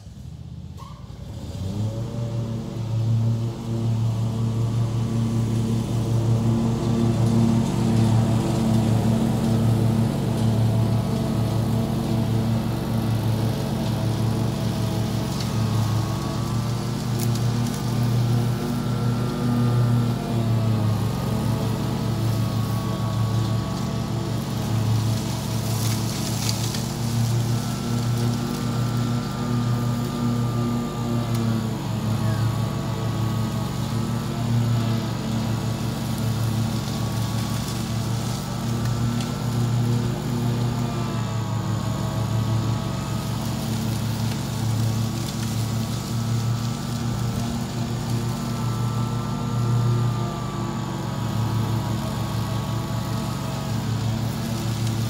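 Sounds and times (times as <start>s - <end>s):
lawn mower engine running: 0.0s - 55.0s.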